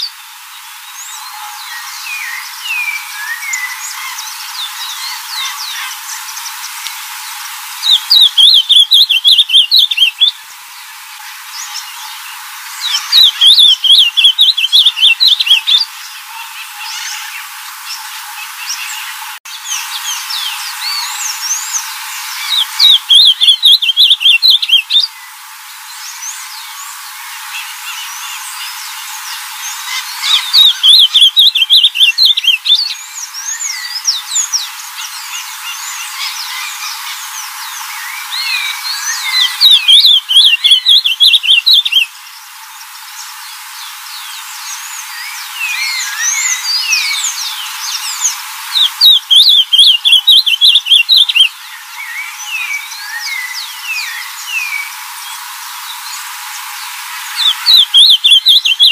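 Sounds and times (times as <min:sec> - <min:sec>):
bird singing warbled phrases: 0:00.0 - 0:06.8, 0:07.8 - 0:10.4, 0:11.1 - 0:56.3, 0:57.2 - 0:58.9
faint chirps of other birds: 0:00.0 - 0:58.9.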